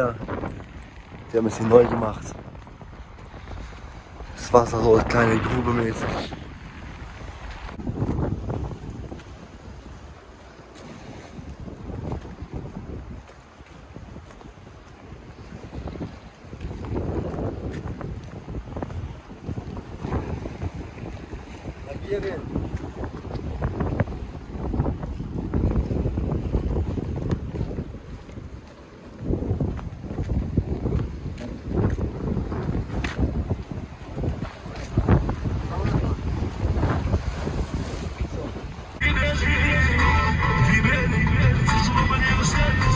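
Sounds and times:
sea washing against shore: 0:00.0 - 0:42.9
wind buffeting microphone: 0:00.0 - 0:42.9.

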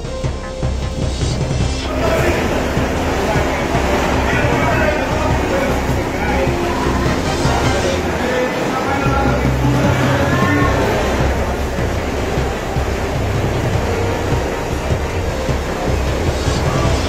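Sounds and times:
heavy rain downpour: 0:00.0 - 0:17.0
music: 0:00.0 - 0:17.0
indistinct voices: 0:00.6 - 0:17.0
gusting wind: 0:01.4 - 0:17.0.

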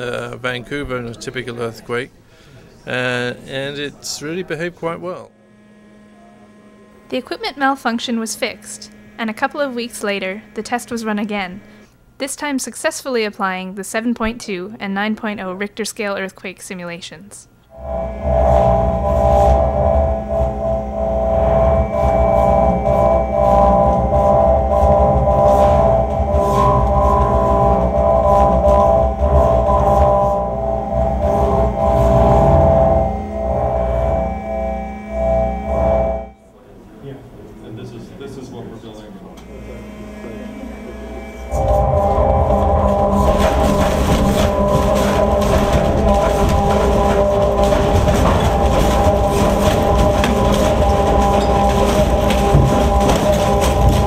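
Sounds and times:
steady whine of held tones: 0:02.4 - 0:12.2, 0:17.7 - 0:54.0
shake table rumbling: 0:17.9 - 0:36.2, 0:41.5 - 0:54.0.

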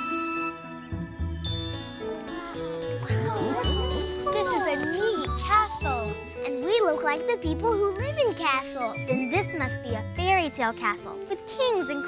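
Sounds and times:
tinkling chimes: 0:00.0 - 0:10.6
light children's music: 0:00.0 - 0:12.0
voices talking: 0:02.0 - 0:12.0.

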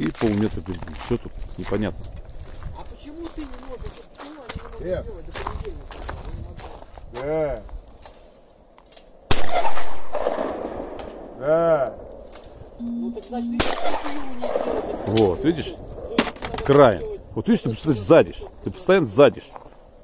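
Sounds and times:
shotgun shots: 0:09.3 - 0:11.0, 0:13.6 - 0:15.2.

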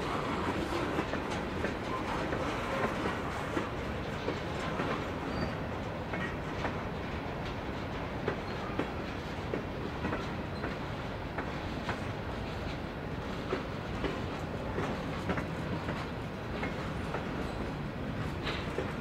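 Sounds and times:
steel wheels rumbling on rail: 0:00.0 - 0:19.0
wheels clicking over rail joints: 0:00.0 - 0:19.0.

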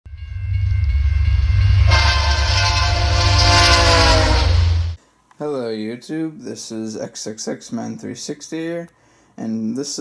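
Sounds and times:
locomotive air horn: 0:00.1 - 0:05.0
train rumbling: 0:00.1 - 0:05.0.

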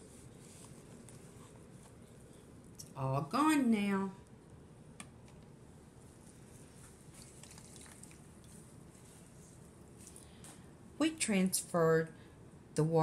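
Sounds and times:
soft handling of sponge and tubs: 0:00.0 - 0:02.7, 0:05.9 - 0:10.6.

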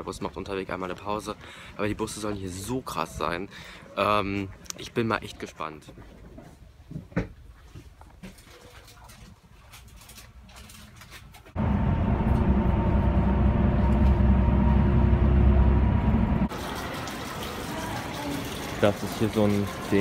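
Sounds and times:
engine and road rumble: 0:11.5 - 0:16.5.

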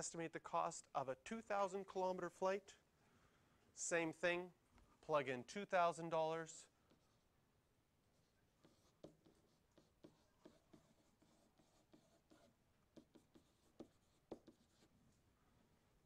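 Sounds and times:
stylus tapping and scratching screen: 0:06.6 - 0:07.3, 0:08.1 - 0:15.0.

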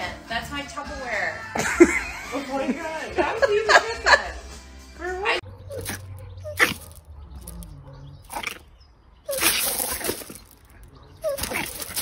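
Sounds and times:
dog whimpering and yipping: 0:05.7 - 0:06.8, 0:10.9 - 0:12.0.

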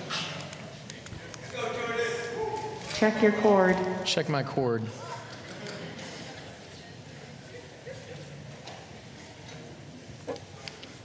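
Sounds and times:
low room murmur: 0:00.0 - 0:11.0.

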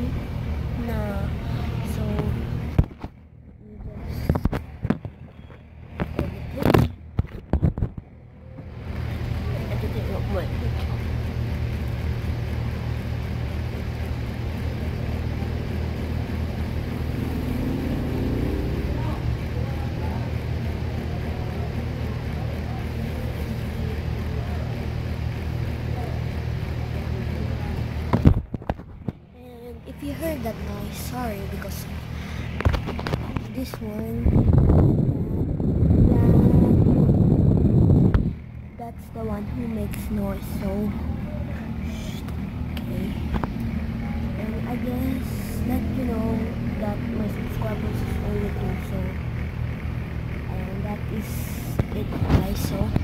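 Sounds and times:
motor droning: 0:00.0 - 0:53.0.

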